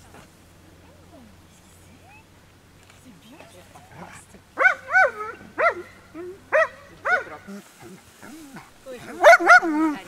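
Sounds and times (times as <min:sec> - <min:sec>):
dog barking: 0:04.6 - 0:07.5, 0:09.2 - 0:10.0.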